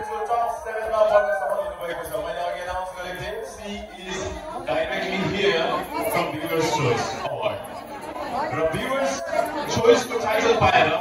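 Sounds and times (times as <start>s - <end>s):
man talking over loudspeakers: 0.0s - 7.7s, 8.4s - 11.0s
audience chatter: 0.0s - 11.0s.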